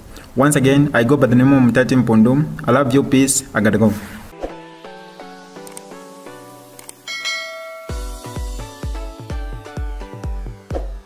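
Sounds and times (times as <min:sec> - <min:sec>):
bright bell chime: 0:07.1 - 0:08.8
electronic music with heavy kick: 0:07.3 - 0:11.0.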